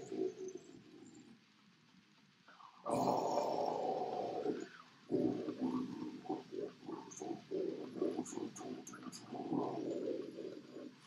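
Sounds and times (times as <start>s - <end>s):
death metal growl vocals: 2.9s - 11.0s.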